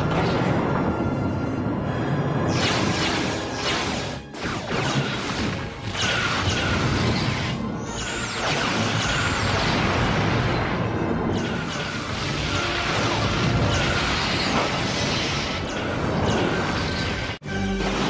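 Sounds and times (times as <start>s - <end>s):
dramatic orchestral music: 0.0s - 18.0s
explosions: 8.4s - 18.0s.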